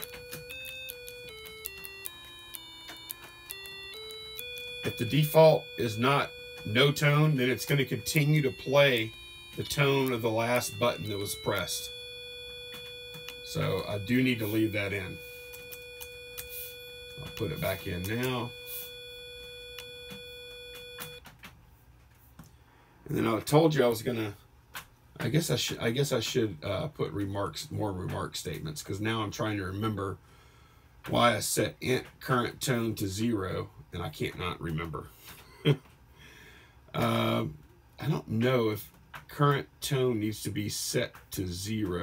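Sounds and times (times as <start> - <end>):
buzzy electronic notes: 0.0 - 21.2.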